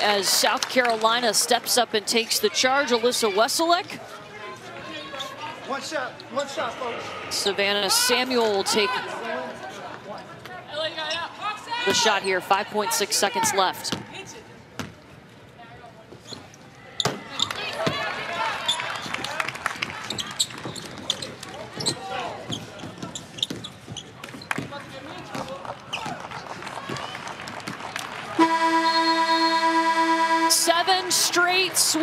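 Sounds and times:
end-of-game buzzer: 0:28.4 - 0:31.0.

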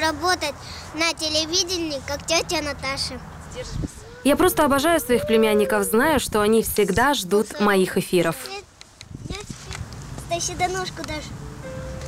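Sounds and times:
child calling: 0:02.4 - 0:06.2.

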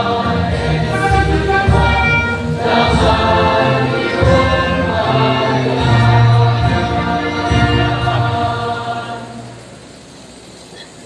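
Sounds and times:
group singing a hymn: 0:00.0 - 0:09.8.

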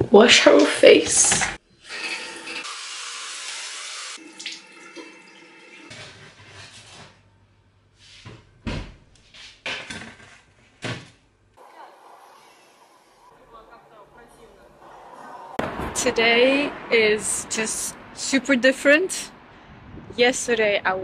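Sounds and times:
water running from tap into sink: 0:01.9 - 0:05.9.

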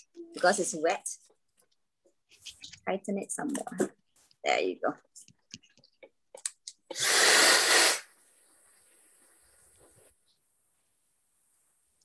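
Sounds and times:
faint high hiss: 0:06.8 - 0:12.0.

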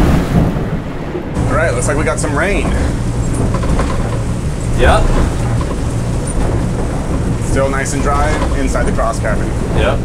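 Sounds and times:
boat engines droning: 0:00.0 - 0:10.0
hull through choppy water: 0:00.0 - 0:10.0.

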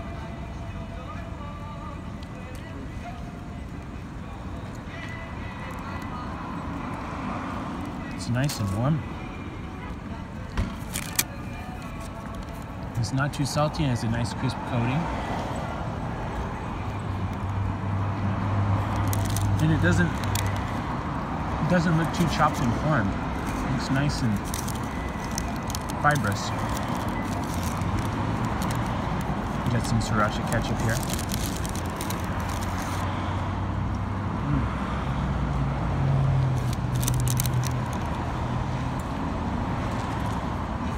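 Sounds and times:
road traffic hum: 0:00.0 - 0:40.9.

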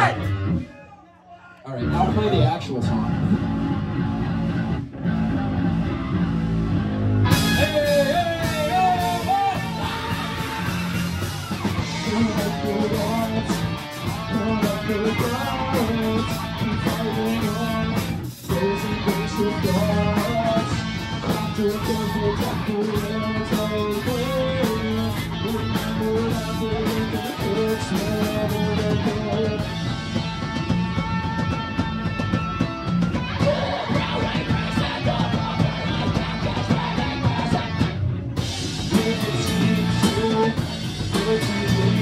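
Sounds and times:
live rock band playing: 0:00.0 - 0:00.7, 0:01.9 - 0:42.0.

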